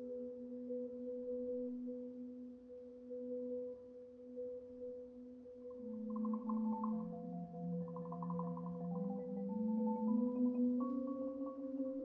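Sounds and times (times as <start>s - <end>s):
mallet percussion sustained tones: 5.8s - 11.8s.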